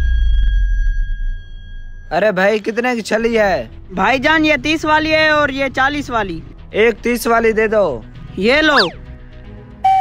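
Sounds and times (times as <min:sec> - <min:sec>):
high-pitched tone: 0:08.7 - 0:09.0.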